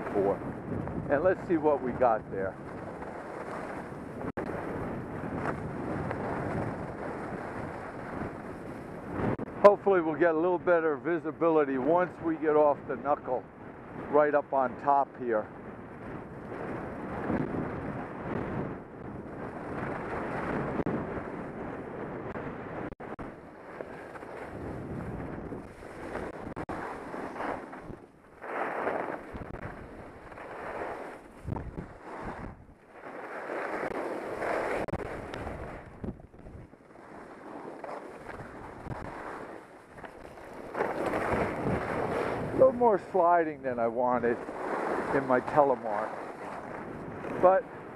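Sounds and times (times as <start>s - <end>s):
skis sliding on snow: 0.0s - 0.4s, 1.0s - 9.4s, 19.3s - 21.5s, 23.4s - 47.7s
wind rushing over microphone: 0.0s - 47.9s.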